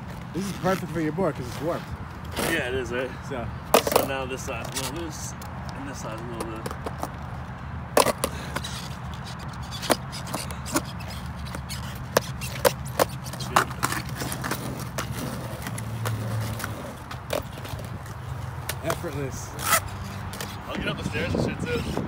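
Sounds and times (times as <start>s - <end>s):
skateboard clicks and knocks on asphalt: 3.7s - 22.0s.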